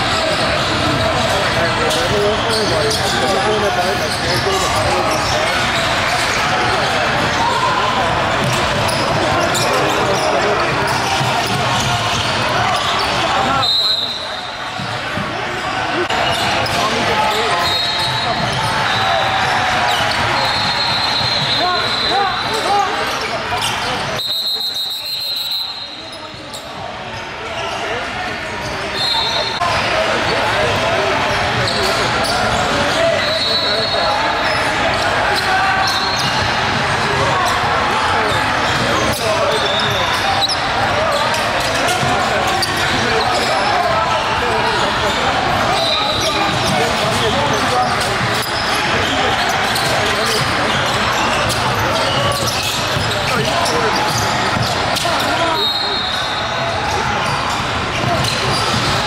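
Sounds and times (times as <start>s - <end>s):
voices echoing in gym: 0.0s - 59.0s.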